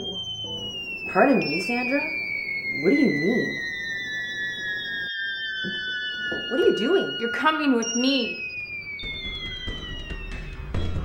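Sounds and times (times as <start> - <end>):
high electronic tone gliding down: 0.0 - 11.0.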